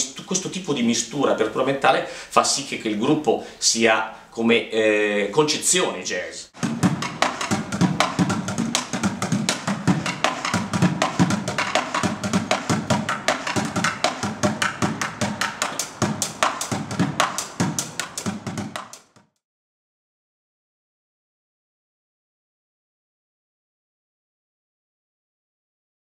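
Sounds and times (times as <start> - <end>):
bucket drum thuds: 6.6 - 19.1.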